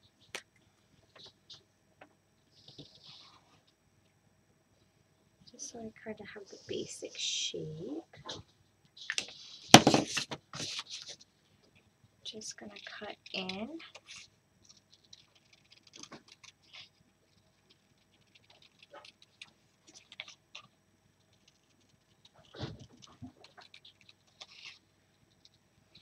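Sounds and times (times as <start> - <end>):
paper rustling: 9.0 - 11.3.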